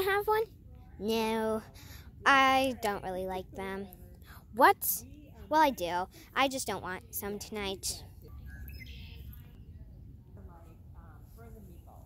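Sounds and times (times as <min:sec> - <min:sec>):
low steady rumble: 0:00.0 - 0:12.0
birds chirping: 0:08.3 - 0:09.7.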